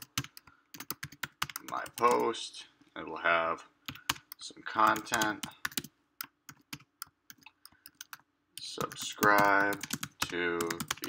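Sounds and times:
keyboard typing clicks: 0.0s - 2.2s, 3.9s - 11.0s.

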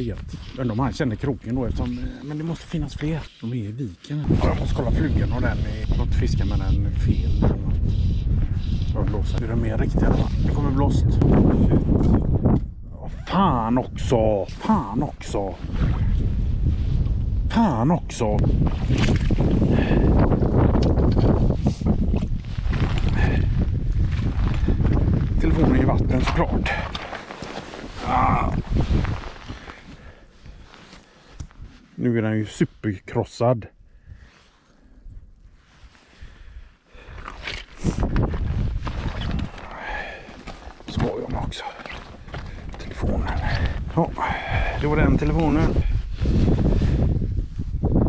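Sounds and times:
wind buffeting microphone: 4.2s - 27.2s, 27.8s - 30.7s, 36.2s - 48.0s
camera handling rumble: 18.5s - 29.6s, 37.1s - 44.0s.

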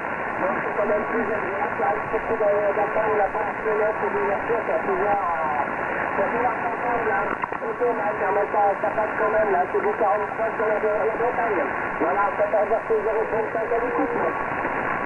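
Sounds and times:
radio band hiss: 0.0s - 15.0s
voice over radio speaker: 0.4s - 14.5s.

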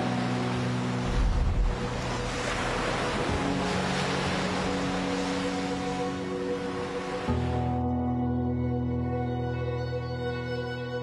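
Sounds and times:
surf breaking over rocks: 0.0s - 7.4s
soft ambient music: 0.0s - 11.0s.

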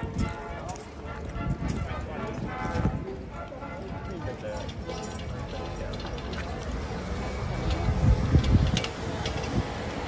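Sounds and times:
horse hooves clopping: 0.0s - 9.6s
crowd chatter: 0.0s - 10.0s.

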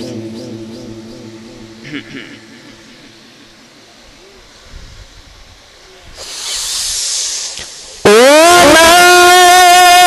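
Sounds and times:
soft hissing: 0.6s - 8.1s.

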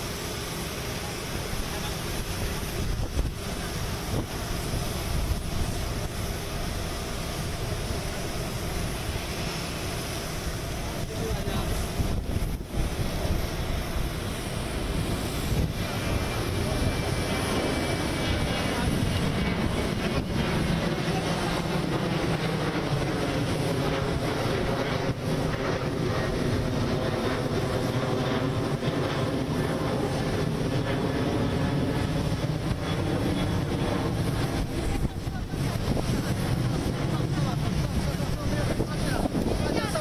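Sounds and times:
aircraft engines whining: 0.0s - 40.0s.

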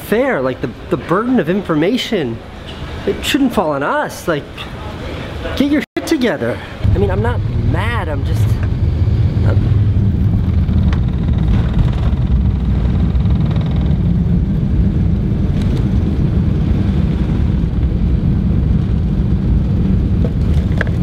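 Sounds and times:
jet cabin engine rumble: 6.6s - 21.0s.

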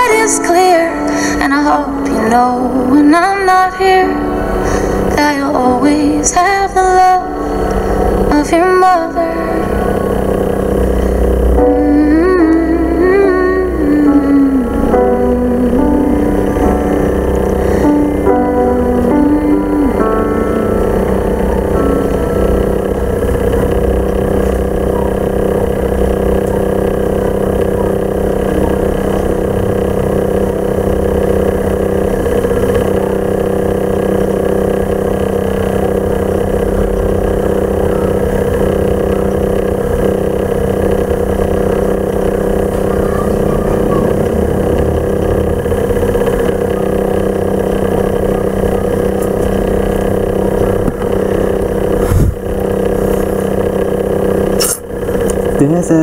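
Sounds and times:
steady mechanical drone: 0.0s - 56.0s.

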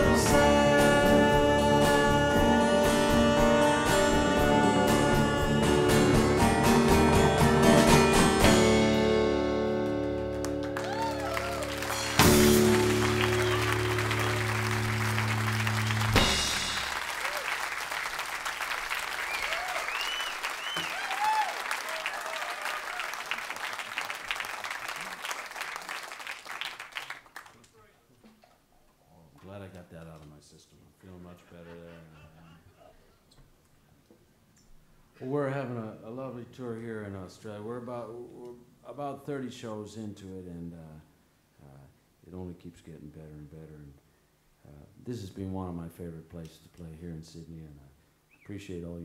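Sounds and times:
person singing: 0.0s - 6.9s
slide guitar: 0.0s - 10.8s, 11.6s - 16.8s
audience applause and cheering: 10.0s - 27.6s
whistles from audience: 19.2s - 22.7s, 48.3s - 48.6s.

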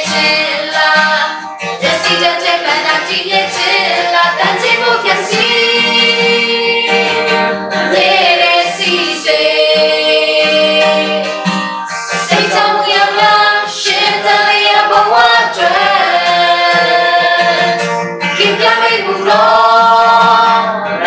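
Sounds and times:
group singing worship song: 0.0s - 21.0s.

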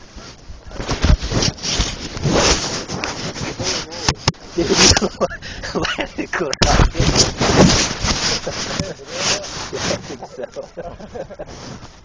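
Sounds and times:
rough scraping: 0.0s - 12.0s.

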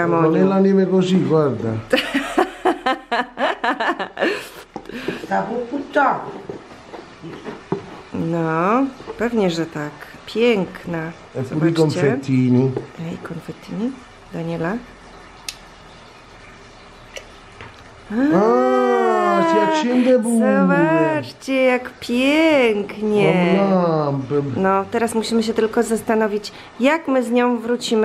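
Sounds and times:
person laughing: 2.0s - 4.7s.

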